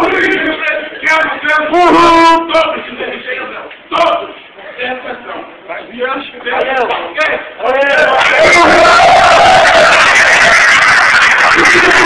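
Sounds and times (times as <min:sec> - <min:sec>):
room of voices calling out: 0:00.0 - 0:12.0
man shouting: 0:01.5 - 0:02.6.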